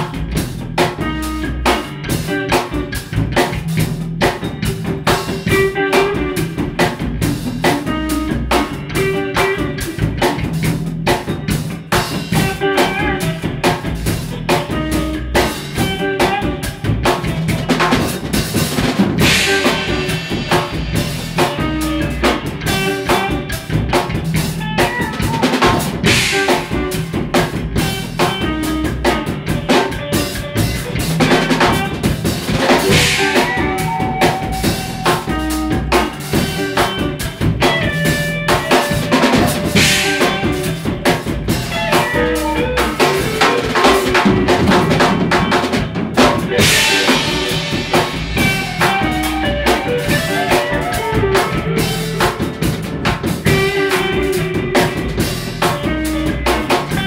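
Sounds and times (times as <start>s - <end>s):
drum kit playing: 0.0s - 57.0s
electric guitar lines: 0.0s - 57.0s.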